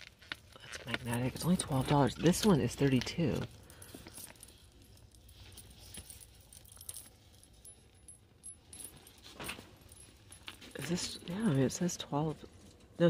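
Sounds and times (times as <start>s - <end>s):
metal bracelet jingling: 0.8s - 11.8s.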